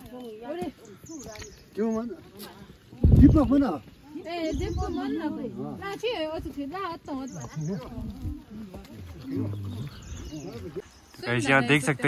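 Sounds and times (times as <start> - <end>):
people talking: 4.1 - 12.0.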